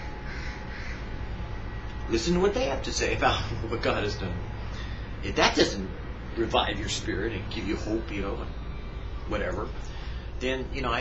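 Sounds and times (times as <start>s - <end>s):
steady low hum: 0.0s - 11.0s
bird harsh call: 0.2s - 1.1s.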